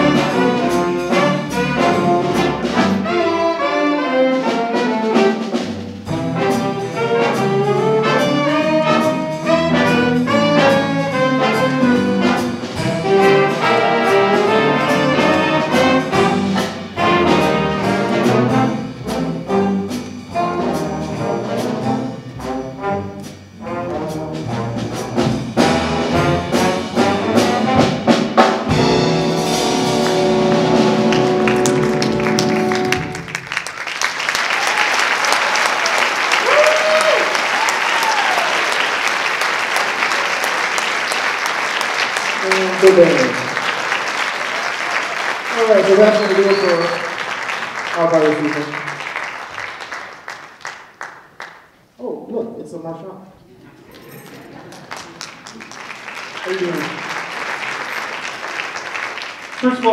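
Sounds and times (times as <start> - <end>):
jazz big band playing: 0.0 - 51.4, 53.5 - 59.9
audience applauding and cheering: 29.6 - 51.9, 53.8 - 59.9.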